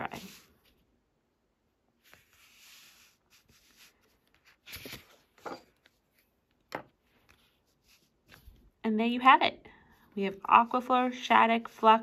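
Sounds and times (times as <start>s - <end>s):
paper rustling: 2.0s - 8.7s.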